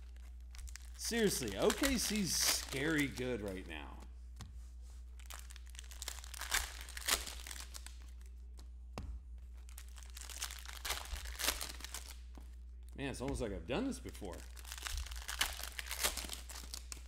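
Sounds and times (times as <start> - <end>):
cellophane wrappers crinkling and tearing: 0.0 - 4.0, 5.1 - 8.4, 9.6 - 13.0, 14.1 - 17.0
cards being handled: 0.0 - 17.0.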